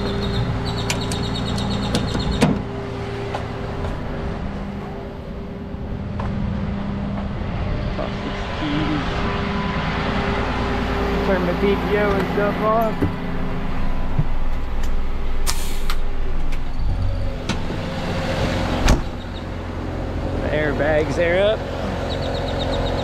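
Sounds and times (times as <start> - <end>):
diesel engine idling: 0.0 - 23.0.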